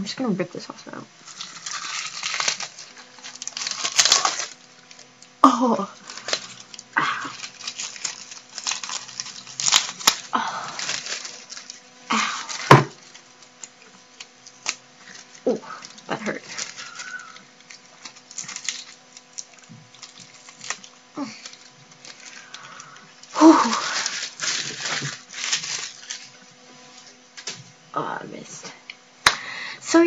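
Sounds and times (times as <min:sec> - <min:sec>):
paper crinkling: 0:01.2 - 0:27.8
adhesive tape ripped off skin: 0:01.3 - 0:05.1.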